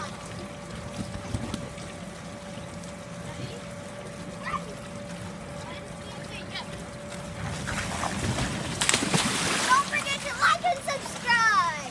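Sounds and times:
splash into pool: 7.4 - 10.2.

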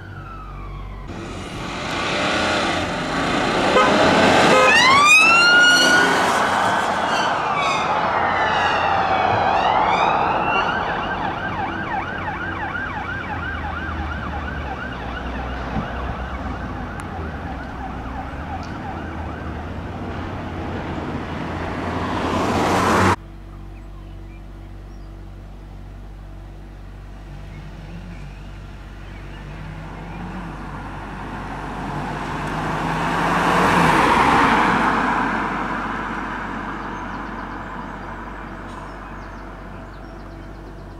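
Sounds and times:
vehicle noise: 0.0 - 40.9
car engine and tyres passing: 0.2 - 40.9
police siren wailing and yelping: 4.1 - 20.0.

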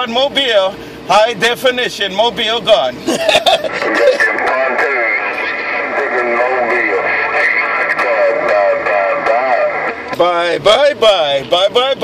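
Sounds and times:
radio static: 3.7 - 10.9
distant voice over radio: 3.8 - 10.2.

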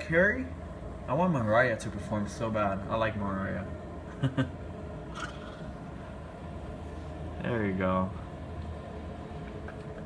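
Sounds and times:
low background hum: 0.0 - 10.0
man laughing: 4.1 - 4.7.

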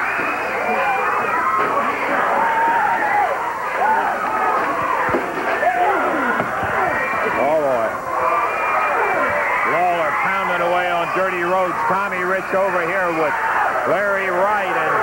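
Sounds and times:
crowd shouting and screaming: 0.0 - 15.0
low steady yell: 0.0 - 15.0.

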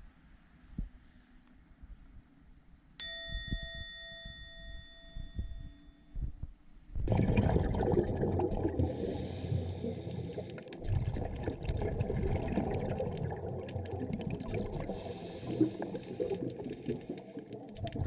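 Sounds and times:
bell-like ding: 3.0 - 6.0
bubbling underwater water noise: 7.0 - 18.0.

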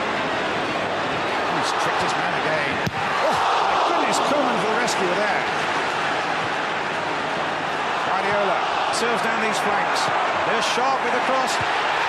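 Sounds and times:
stadium crowd roaring and shouting: 0.0 - 12.0.

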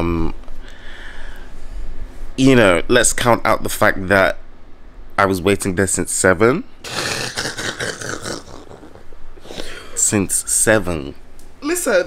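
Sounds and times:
man wheezing laughter: 6.9 - 9.1.

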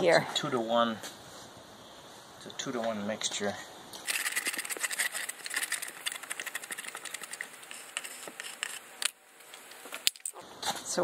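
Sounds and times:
resin stirred in plastic cup: 4.0 - 10.4.

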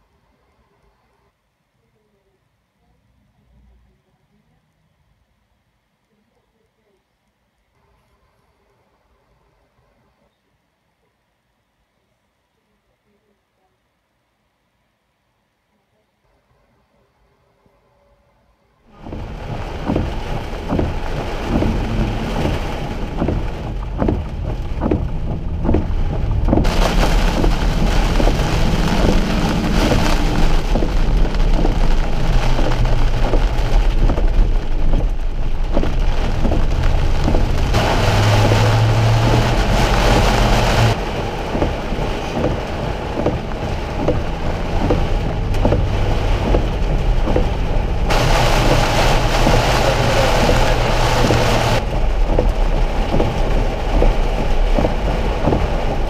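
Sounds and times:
engine and road noise: 18.9 - 56.0
heavy rain on car: 18.9 - 56.0.

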